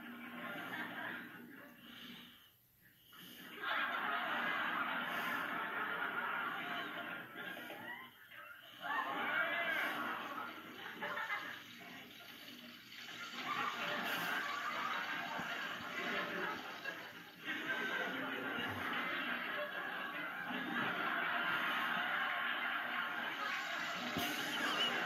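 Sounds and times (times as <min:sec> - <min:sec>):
sitcom soundtrack from television: 0:00.0 - 0:25.0.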